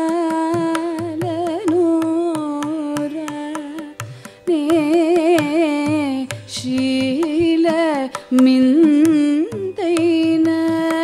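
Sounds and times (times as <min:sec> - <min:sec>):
woman singing ornamented melody: 0:00.0 - 0:11.0.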